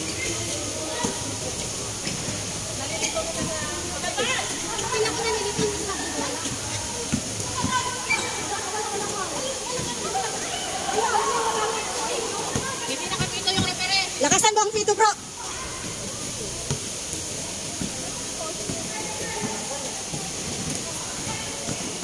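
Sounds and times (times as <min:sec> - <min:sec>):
players calling out and chattering: 0:00.0 - 0:22.0
steady background hiss: 0:00.0 - 0:22.0.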